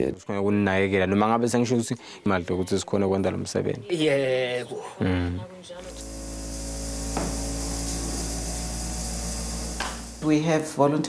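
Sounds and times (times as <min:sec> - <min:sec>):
hiss: 0:05.9 - 0:10.3
low electrical hum: 0:05.9 - 0:10.6.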